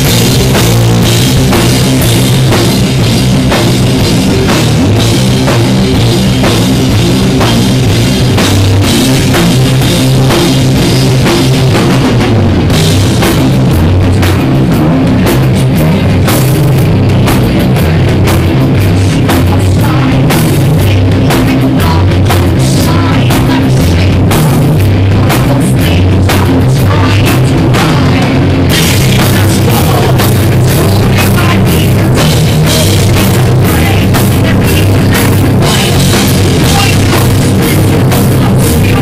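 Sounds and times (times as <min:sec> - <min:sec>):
heavy metal band playing live: 0:00.0 - 0:39.0.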